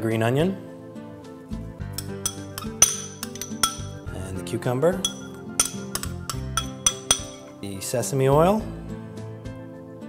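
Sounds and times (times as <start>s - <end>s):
background music: 0.0s - 10.0s
metal spoon clinking on glass bowl: 1.9s - 4.1s, 5.0s - 7.6s.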